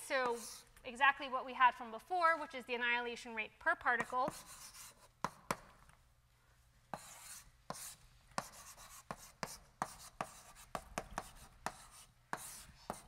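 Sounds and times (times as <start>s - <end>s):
chalk tapping on blackboard: 0.2s - 0.6s, 4.0s - 5.8s, 6.9s - 13.0s
chalk scratching: 0.2s - 0.7s, 4.0s - 5.6s, 6.9s - 13.0s.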